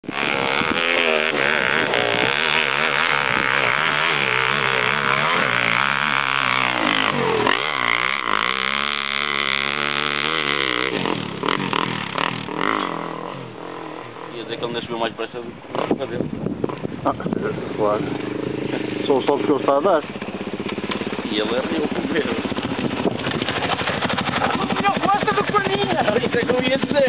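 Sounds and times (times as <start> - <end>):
dirt bike engine revving: 0.0 - 27.0.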